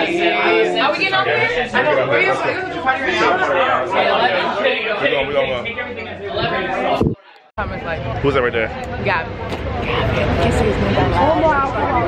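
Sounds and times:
lively chatter of voices: 0:00.0 - 0:12.0.

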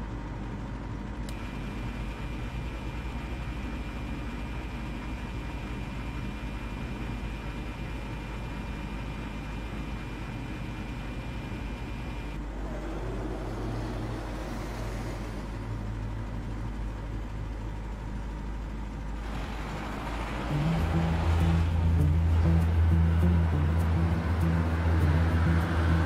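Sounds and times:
off-road vehicle engine rumble: 0:00.0 - 0:26.0
music with sustained low notes: 0:20.0 - 0:26.0.

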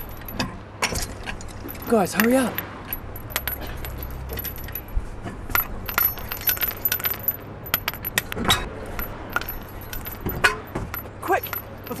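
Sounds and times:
light metallic clicking and jingling: 0:00.0 - 0:00.5, 0:01.3 - 0:12.0
thin high ringing: 0:01.5 - 0:12.0.

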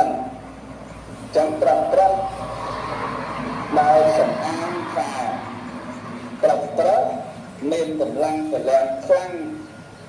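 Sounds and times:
man chanting into microphone: 0:03.6 - 0:05.5, 0:06.4 - 0:09.7.

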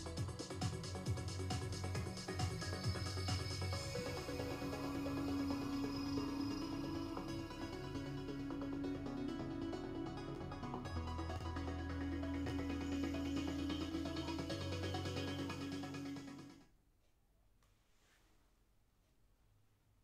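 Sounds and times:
low bass line: 0:00.0 - 0:16.6
sustained synth tone: 0:01.9 - 0:16.6.

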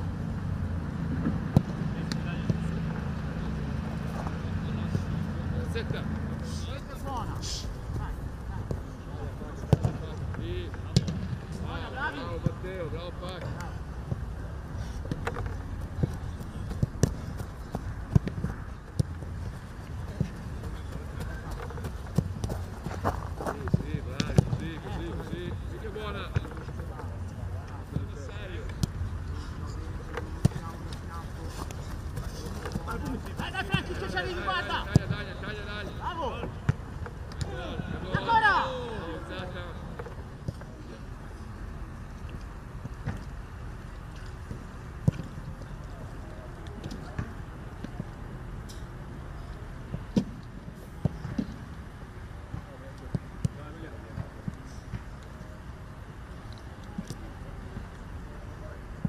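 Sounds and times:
footballs being struck: 0:09.6 - 0:10.0, 0:10.9 - 0:11.4, 0:15.1 - 0:26.9, 0:30.1 - 0:36.0
distant shouting voices: 0:30.5 - 0:36.6, 0:37.4 - 0:39.3.

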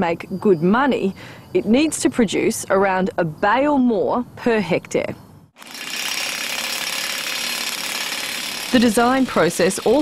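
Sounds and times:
metalworking power tool running: 0:05.6 - 0:10.0.

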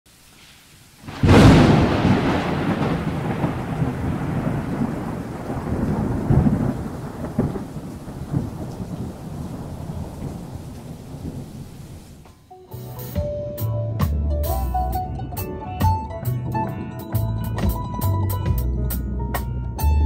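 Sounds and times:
steady rain: 0:00.1 - 0:12.3
thunder cracking and rumbling: 0:01.0 - 0:12.3.

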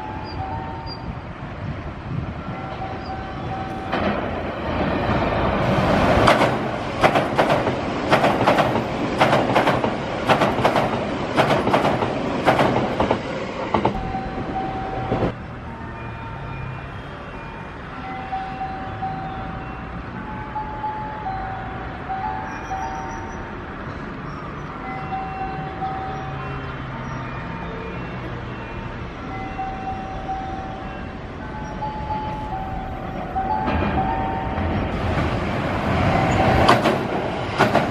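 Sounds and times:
train wheels clacking over joints: 0:06.0 - 0:15.4, 0:32.3 - 0:37.9.

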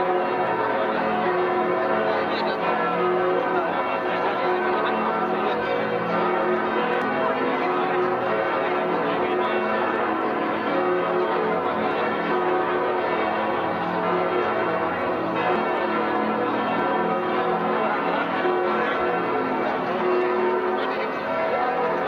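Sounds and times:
church bells pealing: 0:00.0 - 0:22.0.

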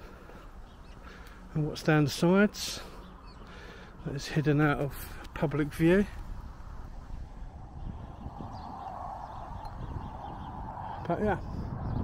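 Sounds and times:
wind rumbling on microphone: 0:02.8 - 0:12.0.

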